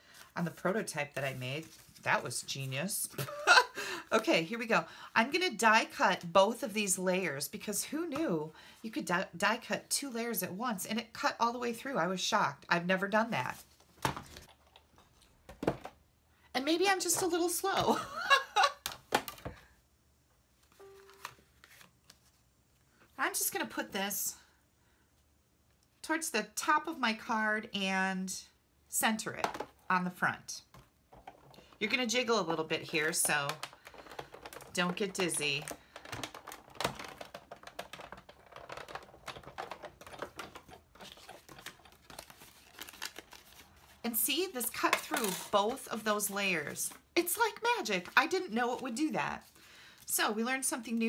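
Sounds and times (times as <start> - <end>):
woman laughing: 3.1 - 4.1, 17.9 - 18.8
faint handling of card: 20.5 - 23.0, 33.5 - 44.0
plastic plates clicking and knocking: 33.1 - 42.2.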